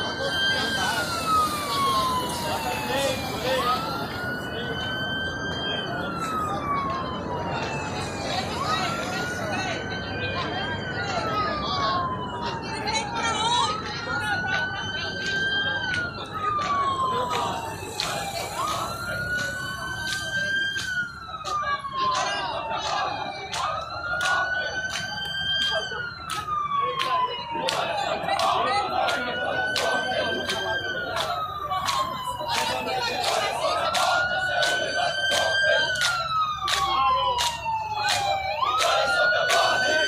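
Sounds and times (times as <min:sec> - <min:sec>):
police siren wailing: 0:00.0 - 0:40.0.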